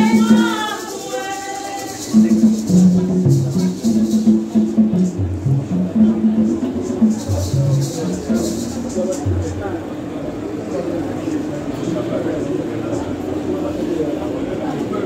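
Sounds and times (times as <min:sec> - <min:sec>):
shaken rattle beat: 0:00.0 - 0:10.1.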